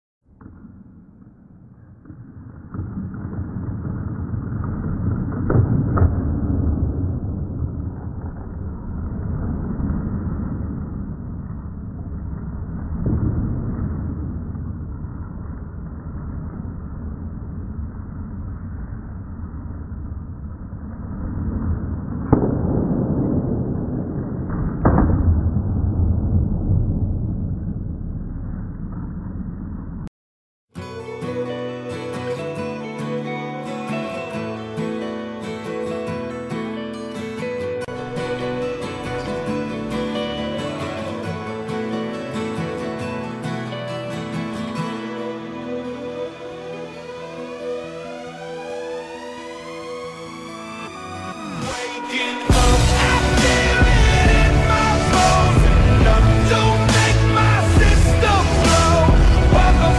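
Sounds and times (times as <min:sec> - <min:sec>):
deep dull rumble: 0:02.2 - 0:30.1, 0:52.5 - 0:59.9
heavy booms: 0:21.3 - 0:30.1, 0:52.5 - 0:59.9.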